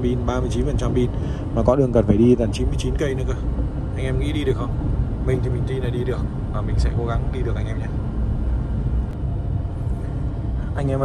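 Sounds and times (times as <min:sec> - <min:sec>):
road and tyre noise in car cabin: 0:00.0 - 0:11.0.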